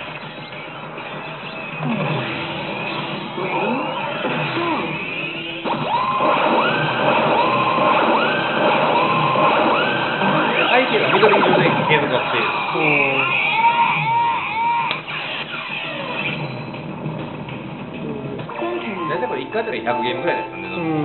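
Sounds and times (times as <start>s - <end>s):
slot machine music and effects: 0.0s - 14.4s, 18.3s - 21.0s
repeated rising tones: 1.8s - 21.0s.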